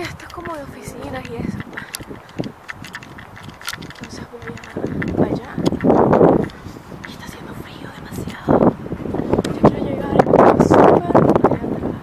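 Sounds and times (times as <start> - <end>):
light clicks: 0.0 - 8.6.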